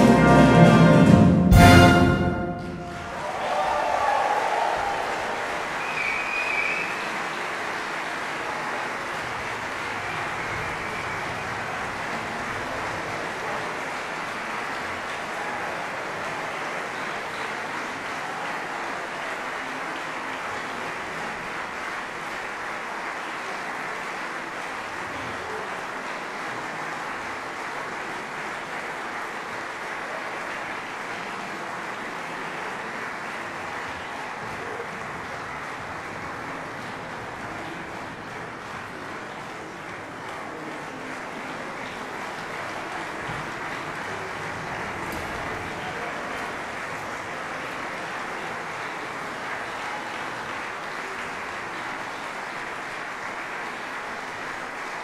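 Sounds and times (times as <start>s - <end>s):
audience applauding: 0.0s - 55.0s
high call or whistle: 5.8s - 7.1s.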